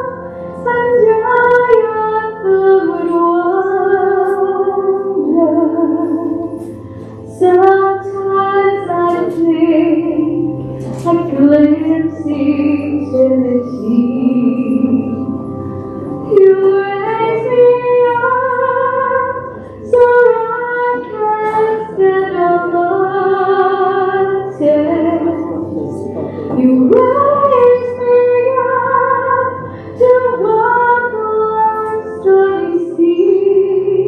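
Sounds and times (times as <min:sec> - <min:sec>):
woman singing a hymn: 0:00.0 - 0:15.6, 0:16.2 - 0:25.8, 0:26.4 - 0:34.0
low accompaniment: 0:00.0 - 0:34.0.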